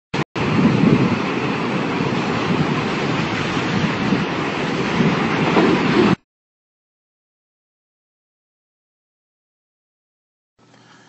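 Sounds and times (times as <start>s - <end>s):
rushing rumbling noise: 0.4s - 6.2s.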